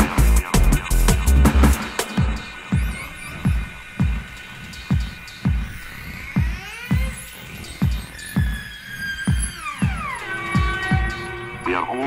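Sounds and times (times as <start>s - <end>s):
electronic kick drums falling in pitch: 0.0s - 11.4s.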